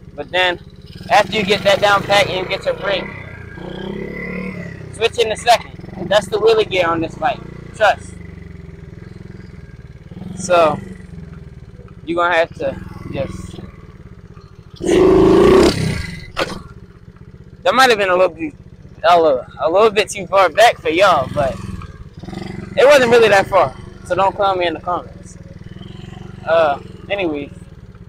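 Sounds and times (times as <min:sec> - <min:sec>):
motorbike engine idling: 0:00.0 - 0:28.0.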